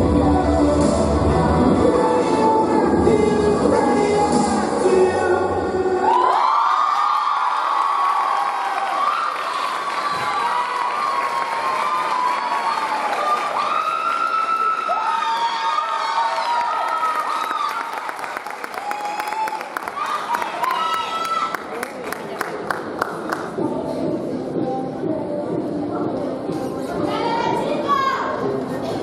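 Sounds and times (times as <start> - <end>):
audience cheering and screaming: 5.9 - 21.6
people clapping: 6.1 - 23.6.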